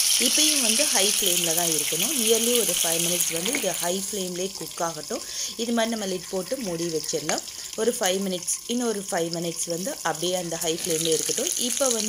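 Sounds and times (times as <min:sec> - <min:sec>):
chicken frying in oil: 0:00.0 - 0:12.0
woman talking: 0:00.2 - 0:12.0.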